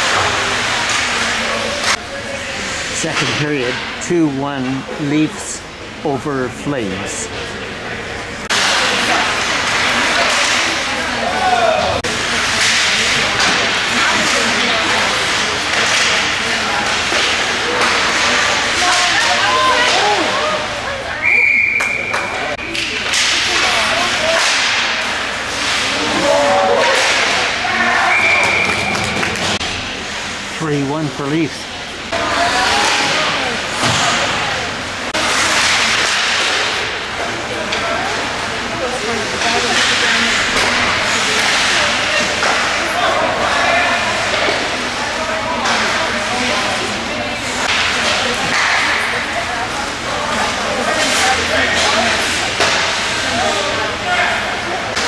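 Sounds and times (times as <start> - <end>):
spectators' voices: 0.0 - 55.0
sticks and puck clacking: 8.5 - 20.3, 21.8 - 29.6, 35.1 - 38.1, 39.3 - 55.0.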